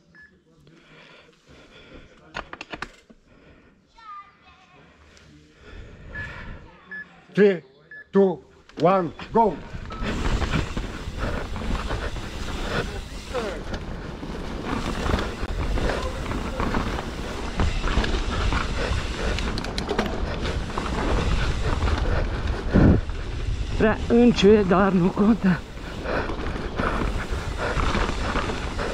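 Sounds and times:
bike rattling on dirt: 9.2 - 28.9
wind buffeting microphone: 17.7 - 24.2.

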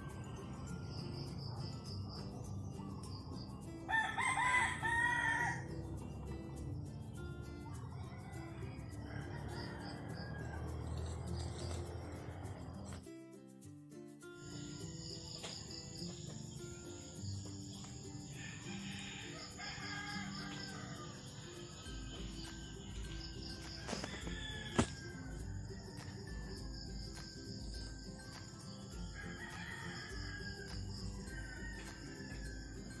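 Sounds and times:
quiet background music: 0.0 - 33.0
rooster crowing: 3.9 - 6.1, 7.6 - 12.9, 18.3 - 21.9, 23.2 - 26.6, 28.6 - 33.0.

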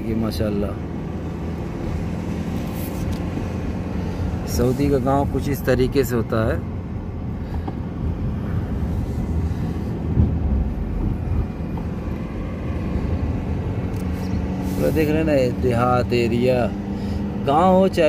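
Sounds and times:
car road and engine rumble: 0.0 - 18.0.

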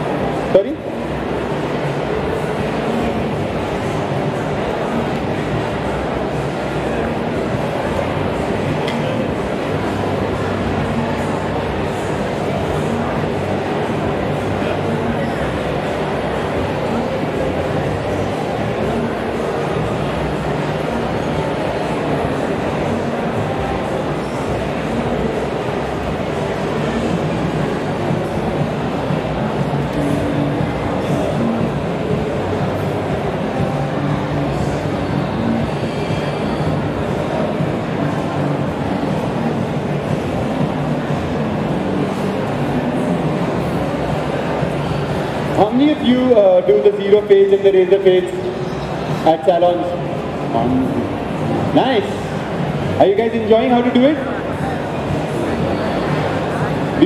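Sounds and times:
background music: 0.0 - 57.0
din of voices in hall: 0.0 - 57.0.

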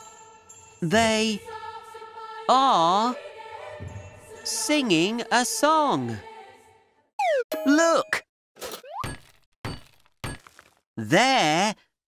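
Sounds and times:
cartoon hammer smashing: 8.6 - 10.8.

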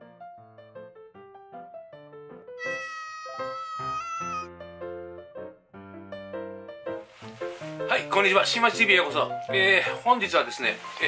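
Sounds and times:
cat meowing: 2.6 - 4.5
light background tune: 6.8 - 11.0.

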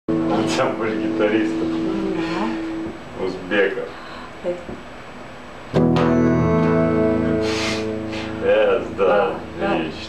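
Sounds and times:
electric guitar chord ringing: 0.1 - 3.0, 5.7 - 10.0
short hiss: 7.4 - 8.4.

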